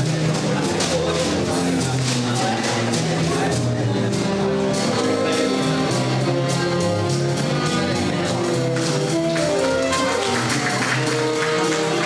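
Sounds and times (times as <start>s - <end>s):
double bass: 0.0s - 12.0s
saxophone: 4.3s - 12.0s.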